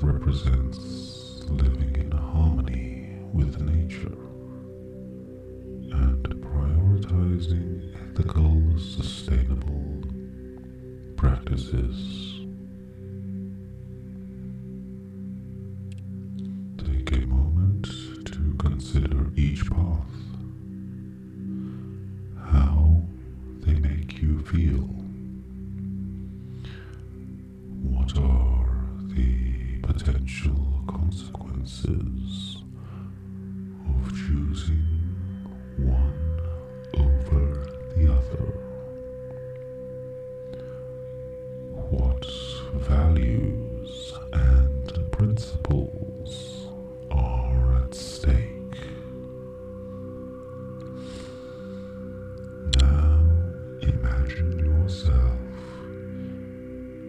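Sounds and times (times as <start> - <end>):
meditation drone music: 0.0 - 57.0.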